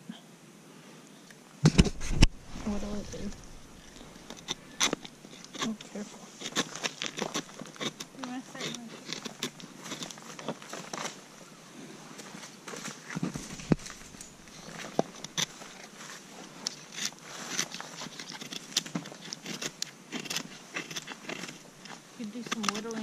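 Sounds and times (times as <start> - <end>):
dull thump: 1.6 - 3.7
knife scraping wooden stick: 1.8 - 11.2, 13.2 - 23.0.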